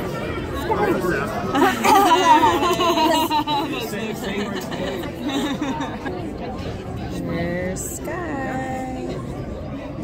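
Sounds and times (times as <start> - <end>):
background murmur: 0.0 - 10.0
people chattering: 0.0 - 10.0.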